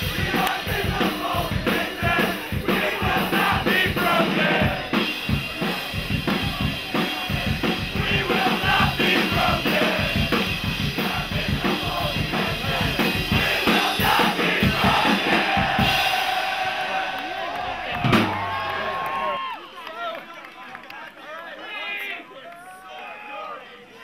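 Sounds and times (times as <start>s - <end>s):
drum kit pounding: 0.0s - 19.1s
punk band playing: 0.0s - 19.1s
crowd shouting: 0.0s - 20.2s, 21.5s - 24.0s.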